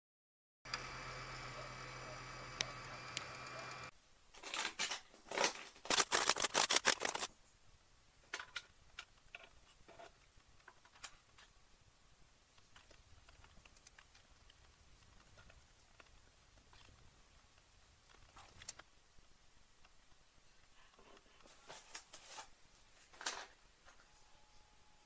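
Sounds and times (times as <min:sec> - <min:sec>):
printer whine and hum: 0:00.7 - 0:03.9
plastic parts clicking and scraping: 0:04.3 - 0:07.3, 0:08.3 - 0:11.5, 0:12.5 - 0:17.0, 0:18.1 - 0:18.9.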